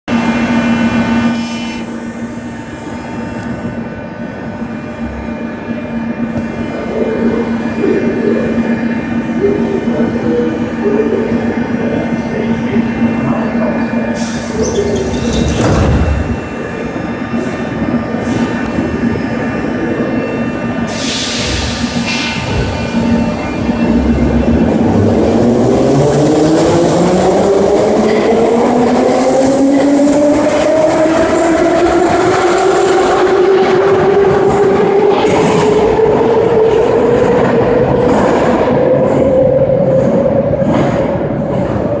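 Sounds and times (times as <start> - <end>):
metro train humming: 0.1 - 42.0.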